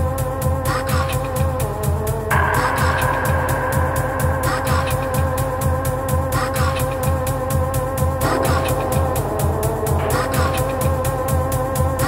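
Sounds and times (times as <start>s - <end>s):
kick drum: 0.0s - 12.0s
hi-hat ticks: 0.1s - 12.0s
synth sweep: 2.2s - 12.0s
held synth tone: 2.3s - 12.0s.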